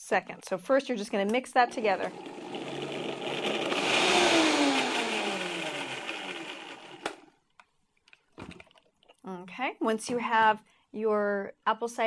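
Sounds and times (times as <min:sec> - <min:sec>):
blender motor winding down: 0:01.6 - 0:07.4
blender switch click: 0:07.0 - 0:07.2.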